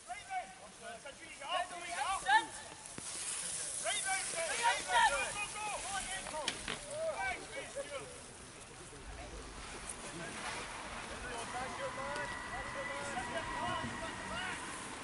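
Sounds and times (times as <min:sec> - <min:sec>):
hiss of noise: 0:01.8 - 0:06.7
spectators shouting encouragement: 0:11.1 - 0:15.0.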